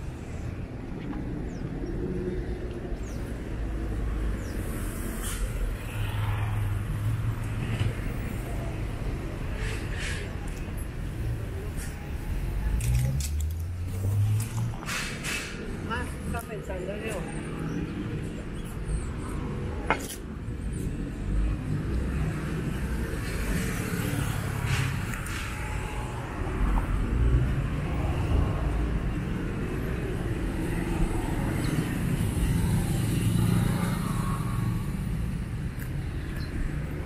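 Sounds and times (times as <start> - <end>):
cars and motorcycles passing: 0.0 - 37.0.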